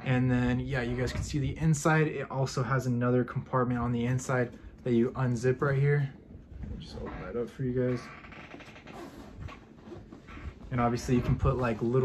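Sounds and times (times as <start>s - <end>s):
small zipper rasp: 8.8s - 10.6s.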